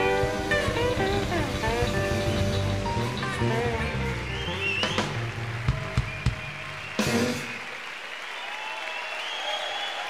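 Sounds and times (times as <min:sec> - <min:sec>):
lead guitar bending notes: 0:00.0 - 0:05.6
blues band playing: 0:00.0 - 0:07.7.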